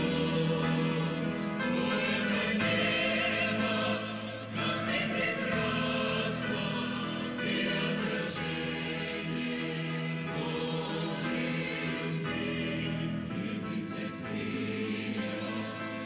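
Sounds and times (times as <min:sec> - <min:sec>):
church choir singing a hymn: 0:00.0 - 0:16.0.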